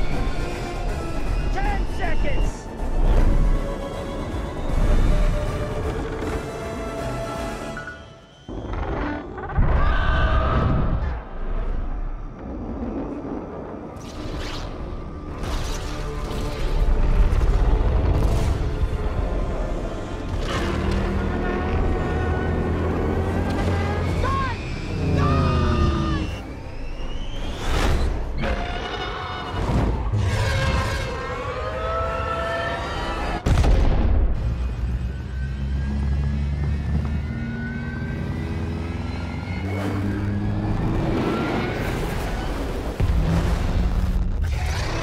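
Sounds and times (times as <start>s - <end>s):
film score music: 0.0s - 45.0s.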